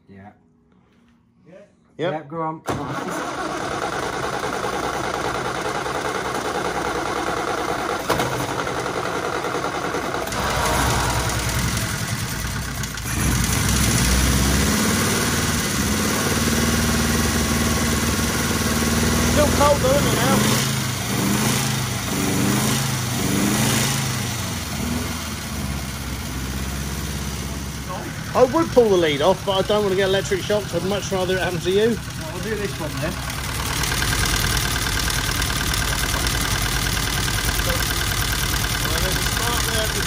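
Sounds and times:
car engine misfiring: 2.7s - 40.0s.

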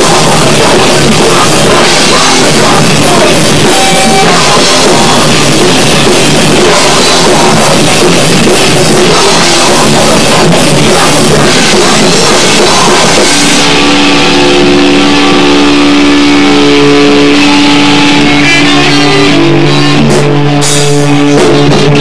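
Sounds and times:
rock band playing: 0.0s - 22.0s
held guitar chord ringing: 13.5s - 21.2s.

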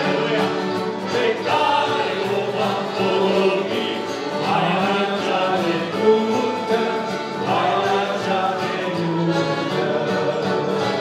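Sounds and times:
acoustic guitar: 0.0s - 11.0s
group of men singing: 0.0s - 11.0s
piano accordions: 0.0s - 11.0s.

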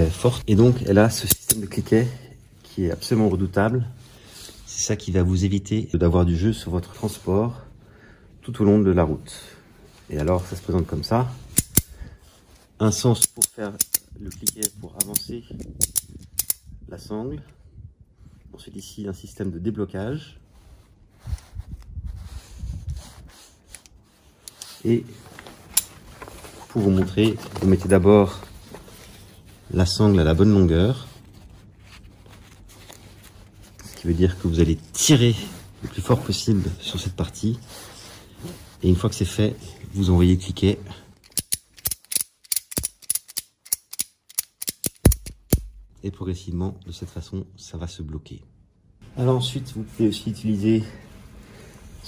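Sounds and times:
ratchet buckle clicks: 1.2s - 1.6s, 11.6s - 12.0s, 13.2s - 16.7s, 41.2s - 45.9s
buckle handling rubbing: 1.2s - 1.8s, 11.5s - 12.0s, 13.1s - 16.6s, 23.6s - 28.0s, 41.2s - 45.9s.

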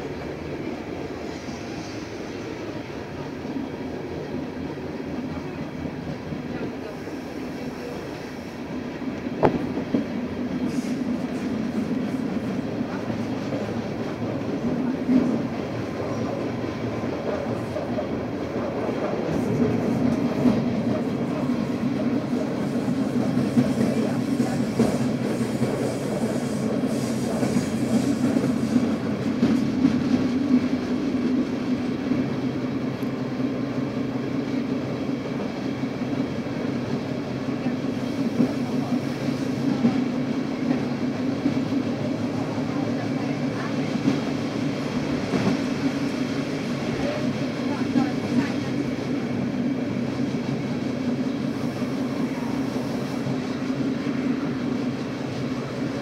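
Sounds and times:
train rumble: 0.0s - 56.0s
sharp clicks of train: 6.1s - 56.0s.

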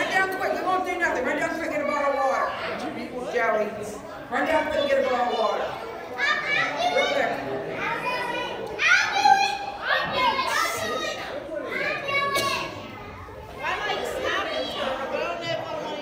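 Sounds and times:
adults talking: 0.0s - 16.0s
children calling out: 1.6s - 3.0s, 4.2s - 16.0s.

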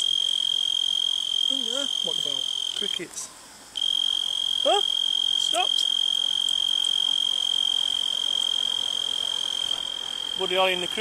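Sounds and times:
cricket trilling: 0.0s - 11.0s
person exclaiming: 4.6s - 4.9s.

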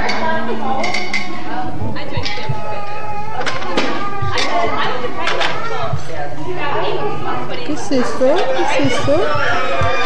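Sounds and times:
voices in a room: 0.0s - 10.0s.

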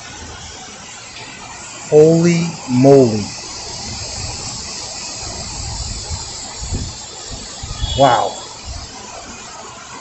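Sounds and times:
heavy rain on water: 0.0s - 10.0s.

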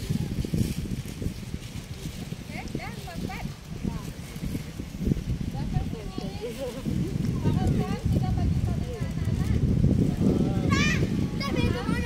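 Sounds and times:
microphone rumble and knocking: 0.0s - 12.0s.

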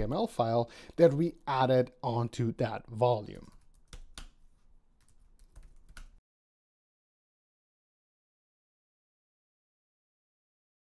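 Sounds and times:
computer keyboard keystrokes: 3.4s - 4.4s, 5.0s - 6.2s.

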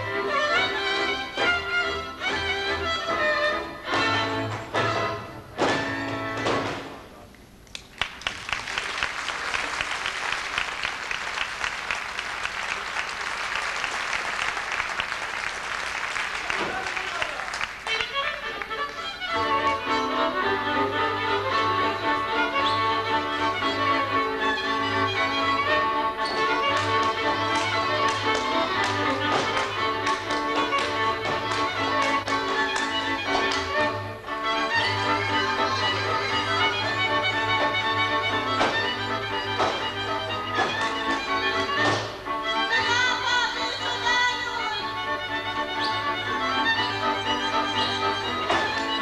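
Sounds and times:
fiddles playing dance tune: 0.0s - 6.5s, 10.5s - 49.0s
audience applause: 7.7s - 19.0s, 26.8s - 32.9s.

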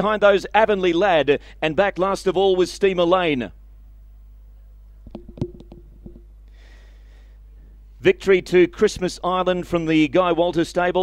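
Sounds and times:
low electrical hum: 0.0s - 11.0s
small clicks and knocks on microphone: 5.0s - 6.3s.

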